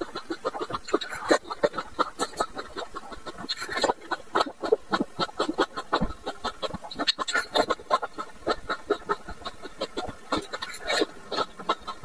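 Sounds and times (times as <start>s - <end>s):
chewing grapes wet squelches: 0.0s - 12.0s.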